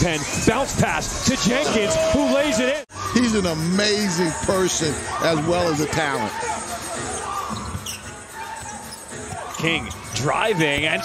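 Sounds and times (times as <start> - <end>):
arena background noise: 0.0 - 11.0.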